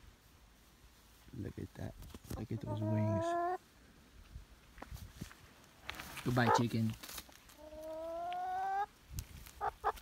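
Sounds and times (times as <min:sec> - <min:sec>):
hen clucking: 0:02.3 - 0:03.6, 0:06.3 - 0:06.8, 0:07.5 - 0:10.0.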